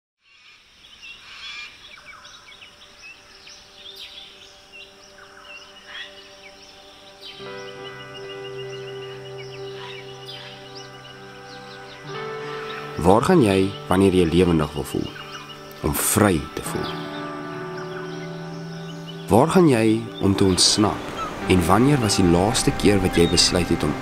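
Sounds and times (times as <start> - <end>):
forest birds chirping: 0.2 - 24.0
held music drone: 4.2 - 24.0.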